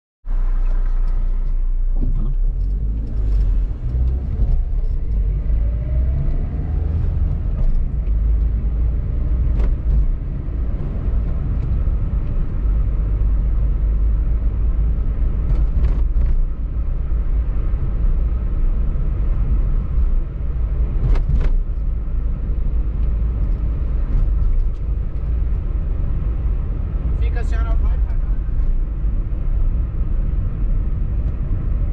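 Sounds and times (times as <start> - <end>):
engine and tyre rumble: 0.2 - 31.9.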